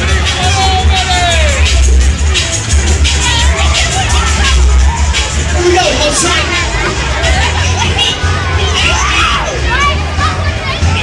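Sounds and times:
children's voices: 0.0s - 11.0s
crowd shouting and screaming: 0.0s - 11.0s
loud music with heavy bass: 0.0s - 11.0s.

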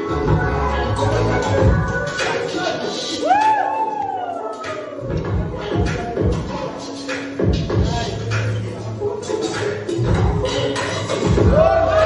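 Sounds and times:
dance music: 0.0s - 12.0s
person hooting oooh: 3.2s - 5.1s.

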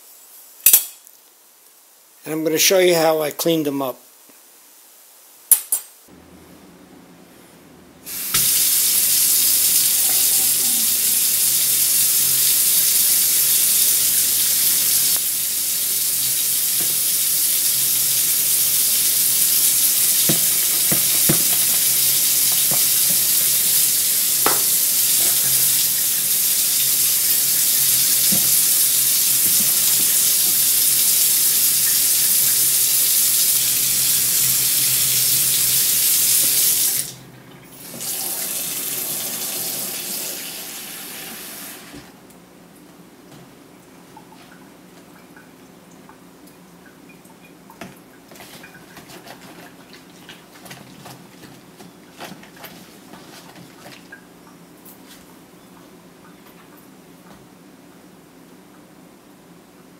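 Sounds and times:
faucet running into a tub: 8.2s - 41.9s.

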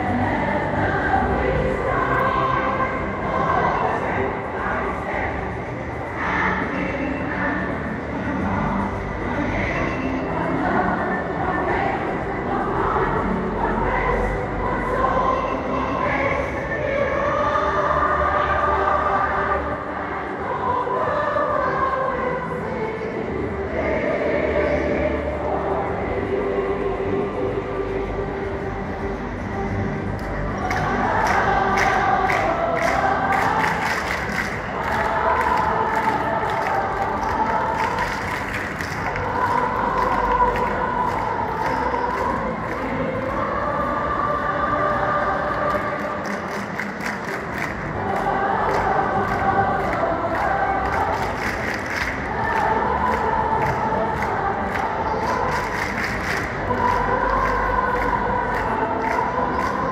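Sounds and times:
large choir singing: 0.0s - 59.9s.

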